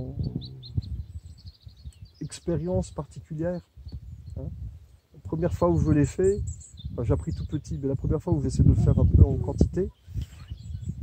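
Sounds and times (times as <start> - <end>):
small bird chirping: 0.0 - 11.0
wind buffeting microphone: 0.0 - 11.0.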